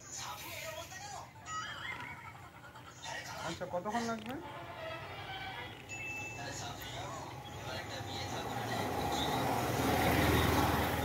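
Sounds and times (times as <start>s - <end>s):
motor vehicle engine: 6.6s - 11.0s.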